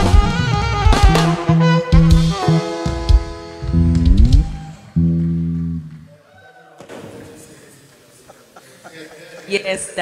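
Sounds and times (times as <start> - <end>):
faint hall sound: 2.9 - 10.0
bass guitar downward slide: 3.6 - 6.1.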